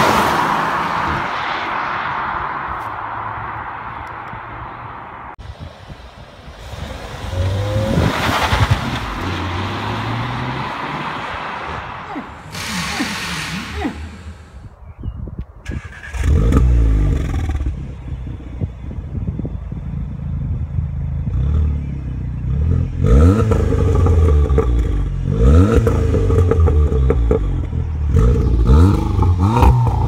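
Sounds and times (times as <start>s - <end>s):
engine revving: 12.0s - 14.6s, 15.7s - 18.0s, 21.2s - 30.0s.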